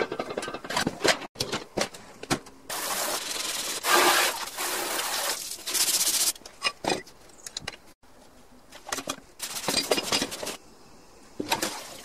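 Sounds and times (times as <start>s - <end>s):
hose spraying onto sheet metal: 2.7s - 6.4s.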